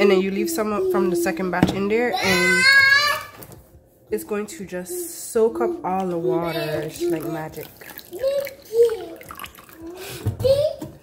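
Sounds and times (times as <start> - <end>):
child's voice: 2.1 - 3.3, 6.2 - 7.4, 8.0 - 11.0
water pouring into plastic bowl: 6.6 - 10.1.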